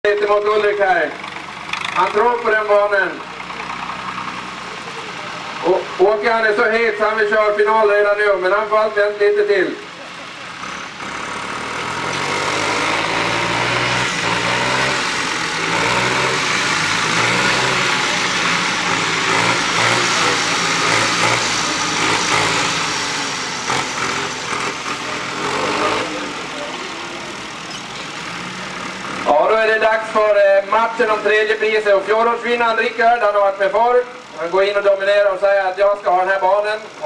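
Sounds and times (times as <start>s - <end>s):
tractor engines running hard: 0.0s - 37.0s.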